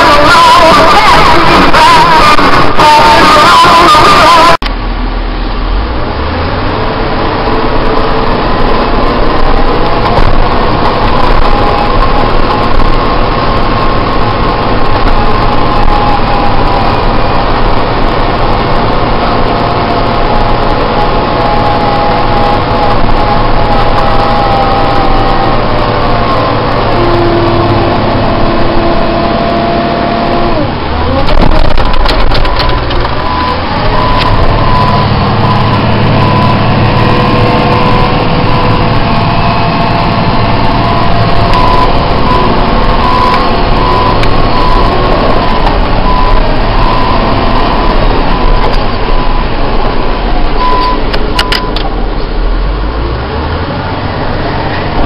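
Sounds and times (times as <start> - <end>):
diesel engine running under load: 0.0 - 55.0.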